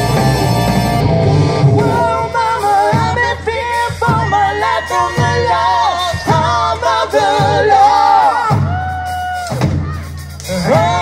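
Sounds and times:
live band playing: 0.0 - 11.0
person singing: 1.7 - 9.2, 9.9 - 11.0.

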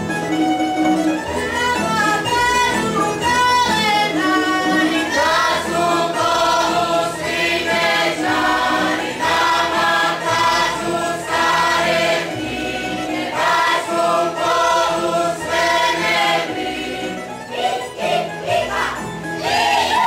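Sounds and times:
string band with double bass: 0.0 - 20.0
group singing folk song: 0.1 - 20.0.

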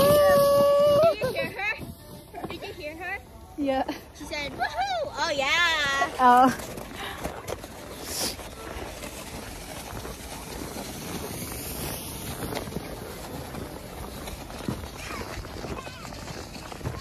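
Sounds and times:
open-air wind rush: 0.0 - 17.0.

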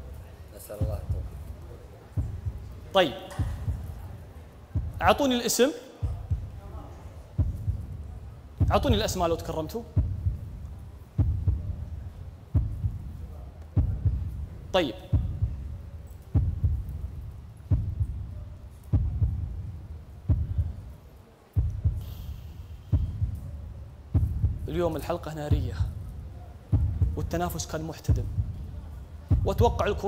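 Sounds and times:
low heartbeat-like booms: 0.8 - 5.3, 6.0 - 21.0, 21.6 - 30.0.

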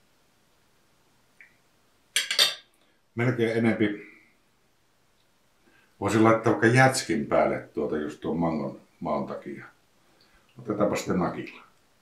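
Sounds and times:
fork clinking and scraping plate: 2.2 - 2.7.

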